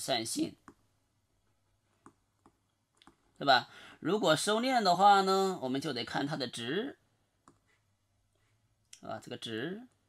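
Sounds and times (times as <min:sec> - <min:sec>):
stylus tapping on tablet: 0:02.0 - 0:03.2.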